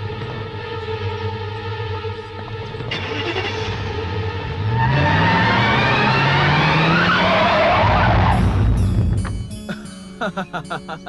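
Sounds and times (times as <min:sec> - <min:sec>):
car engine revving: 0:00.0 - 0:09.8
tyres squealing: 0:04.7 - 0:08.5.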